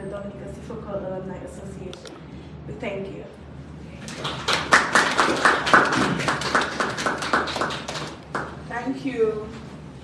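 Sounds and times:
audience applauding: 0:04.1 - 0:08.6.

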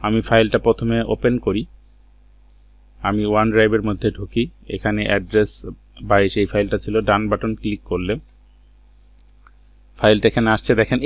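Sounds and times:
man talking: 0:00.0 - 0:01.7, 0:03.0 - 0:08.3, 0:10.0 - 0:11.0
low electrical hum: 0:00.0 - 0:11.0
computer mouse clicks: 0:02.3 - 0:02.6, 0:09.2 - 0:09.6.

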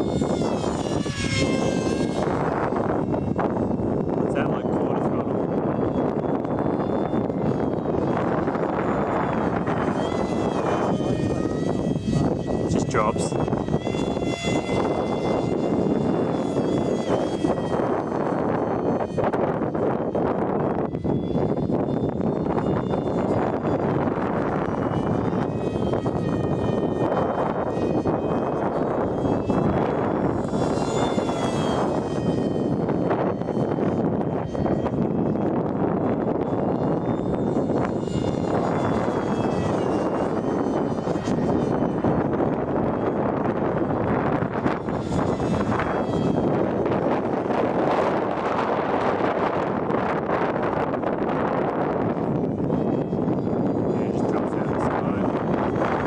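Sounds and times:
rc jet fan whining: 0:00.0 - 0:56.0
steady rushing noise: 0:00.0 - 0:56.0.

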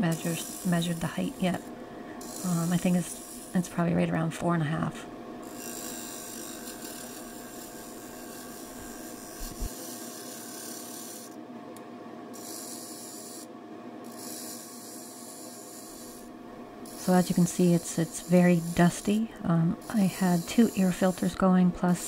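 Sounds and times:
lathe tool scraping wood: 0:00.0 - 0:03.7, 0:05.4 - 0:11.4, 0:12.4 - 0:13.5, 0:14.1 - 0:19.2, 0:19.8 - 0:22.0
faint steady hum: 0:00.0 - 0:22.0.

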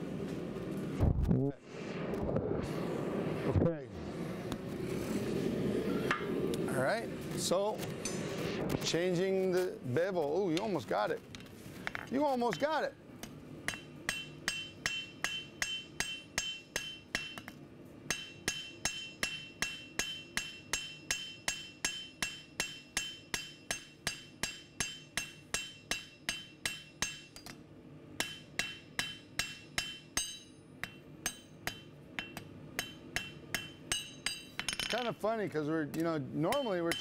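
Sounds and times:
hammer ringing on anvil: 0:13.7 - 0:17.5, 0:18.1 - 0:27.6, 0:28.2 - 0:35.0, 0:36.5 - 0:37.0.

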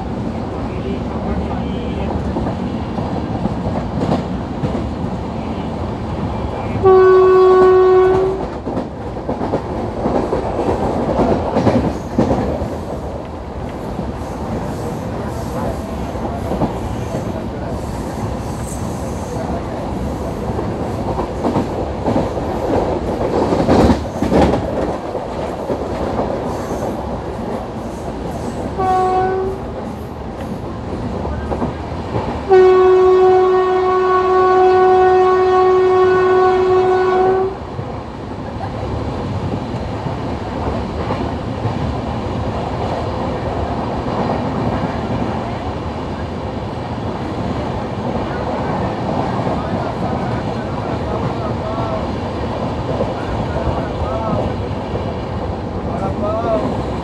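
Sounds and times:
train coaches rumbling on track: 0:00.0 - 0:57.0
locomotive horn blasts: 0:06.8 - 0:08.5, 0:28.8 - 0:29.6, 0:32.5 - 0:37.6.

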